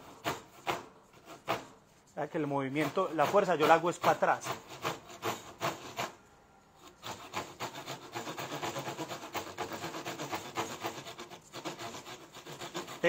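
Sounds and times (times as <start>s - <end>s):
hand saw cutting wood: 0.0s - 6.2s, 6.8s - 13.0s.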